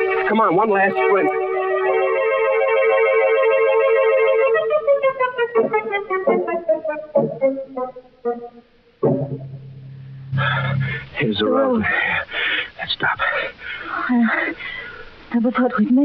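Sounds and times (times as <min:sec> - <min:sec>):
organ music: 0:00.0 - 0:12.1
low steady drone: 0:09.1 - 0:12.4.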